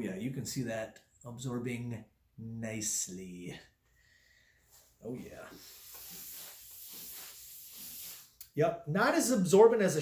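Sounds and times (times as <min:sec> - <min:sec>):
paper towel wiping wet table: 0:05.1 - 0:08.4.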